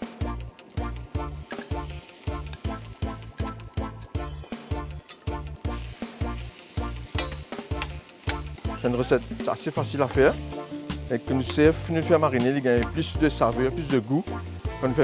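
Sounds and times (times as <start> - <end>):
background music with a beat: 0.0 - 15.0
meat frying in hot oil: 0.7 - 15.0
metal spoon scraping a pan: 1.1 - 13.0.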